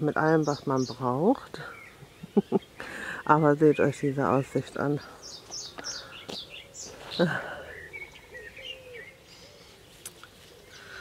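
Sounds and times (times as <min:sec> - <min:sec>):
birds chirping and singing: 0:00.0 - 0:11.0.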